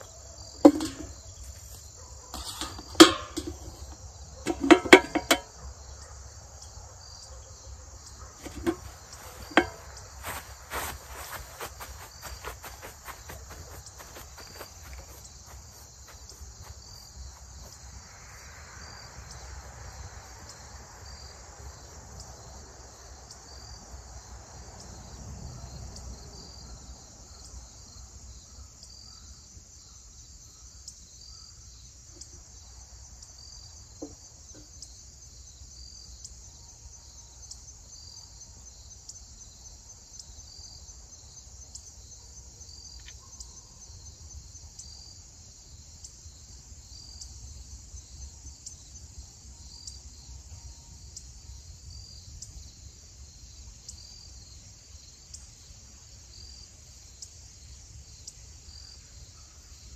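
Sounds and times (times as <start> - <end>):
insects trilling: 0.0 - 59.9
short insect call: 0.0 - 59.9.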